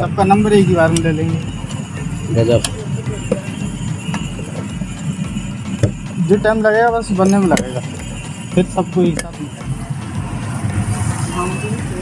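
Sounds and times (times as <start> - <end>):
faint voices: 0.0 - 9.8
street rumble: 0.0 - 12.0.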